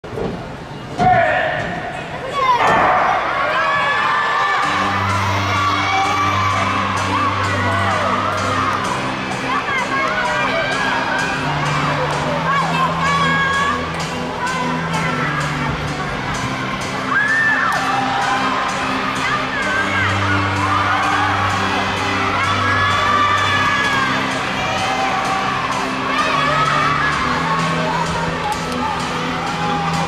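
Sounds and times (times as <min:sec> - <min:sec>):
children shouting and cheering: 0:02.2 - 0:30.0
music with steady beat: 0:04.6 - 0:30.0.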